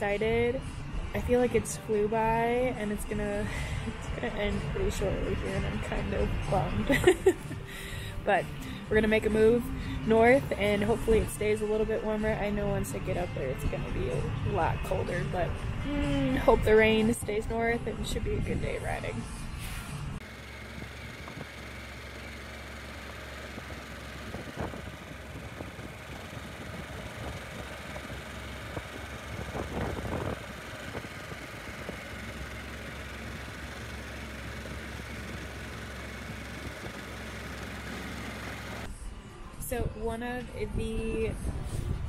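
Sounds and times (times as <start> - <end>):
motorcycle engine cruising: 0.0 - 39.0
tyres on gravel road: 20.1 - 39.1
wind noise: 23.6 - 32.1.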